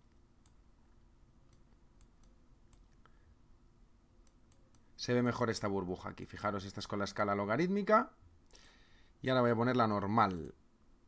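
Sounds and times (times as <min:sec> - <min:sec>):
computer mouse clicks: 0:01.4 - 0:03.2, 0:04.2 - 0:04.9.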